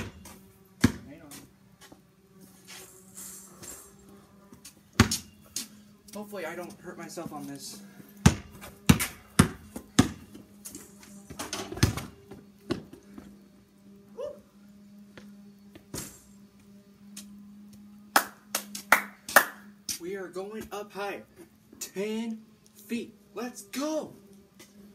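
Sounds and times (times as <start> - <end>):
basketball bouncing on concrete: 0.0 - 1.1, 4.9 - 5.3, 8.2 - 10.4, 11.3 - 13.0.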